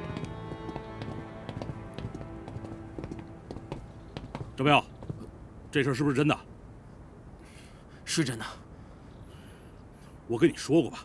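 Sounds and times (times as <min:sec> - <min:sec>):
boot footsteps on pavement: 0:00.0 - 0:05.4
background score held tones: 0:00.0 - 0:05.6.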